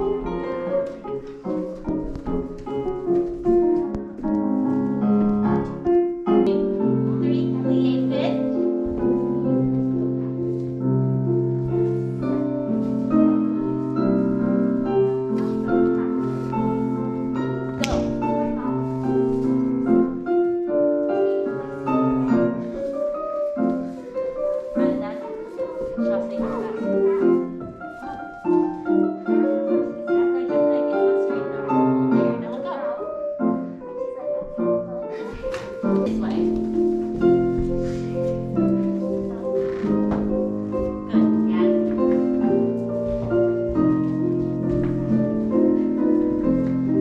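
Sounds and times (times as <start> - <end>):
slow piano music: 0.0 - 47.0.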